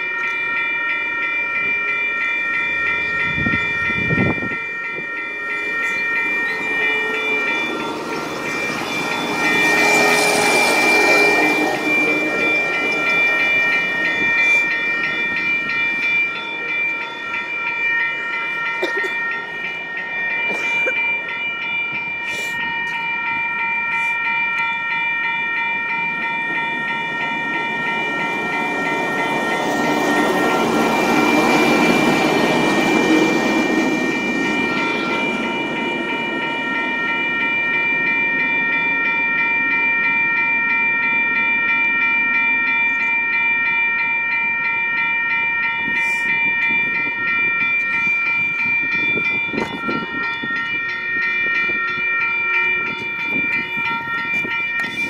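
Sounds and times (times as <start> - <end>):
rail vehicle rolling past: 0.0 - 43.0
crossing bell ringing: 0.0 - 55.0.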